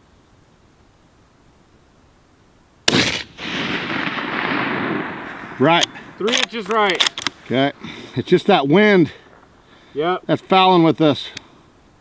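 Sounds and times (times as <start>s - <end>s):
rifle shot: 2.9s - 7.4s.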